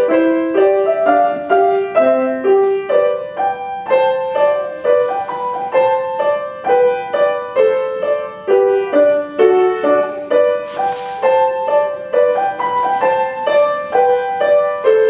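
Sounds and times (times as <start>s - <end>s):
simple piano melody: 0.0s - 15.0s.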